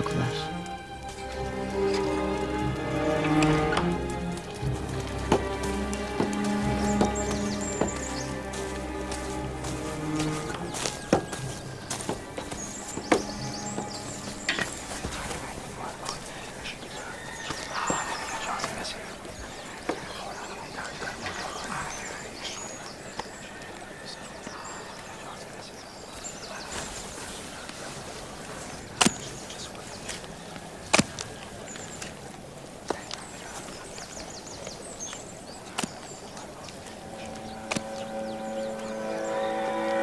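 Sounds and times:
animal calling: 0.0 - 20.2, 33.0 - 40.0
bird chirping: 0.0 - 40.0
outdoor ambience: 0.0 - 40.0.

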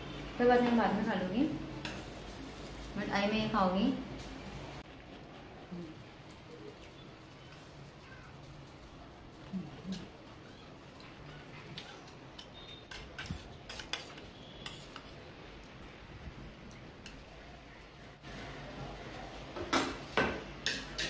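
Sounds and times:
fork scraping plate: 11.7 - 15.1.

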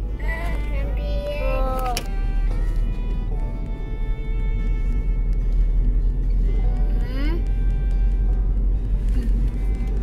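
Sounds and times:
background music: 0.0 - 10.0
moving car rumble: 0.0 - 10.0.

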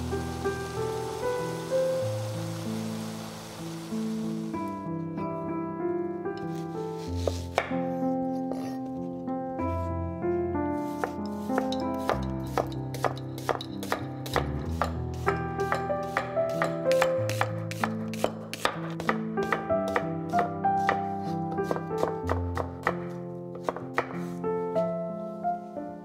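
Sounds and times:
background music: 0.0 - 26.0
knife chopping onion on board: 7.2 - 7.9, 10.9 - 24.3.

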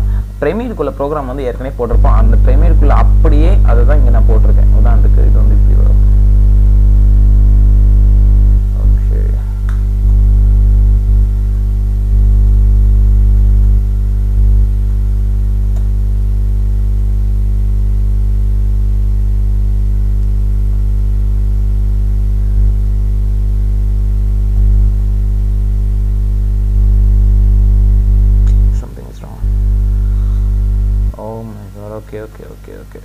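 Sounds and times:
low buzzing hum: 0.0 - 33.0.

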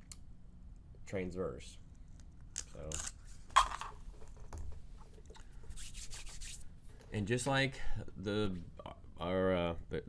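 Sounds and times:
styrofoam rubbing hiss: 5.7 - 6.7.

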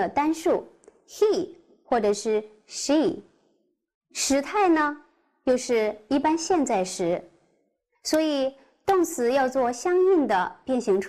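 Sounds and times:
woman speaking: 0.0 - 3.3, 4.2 - 7.4, 8.1 - 11.0.

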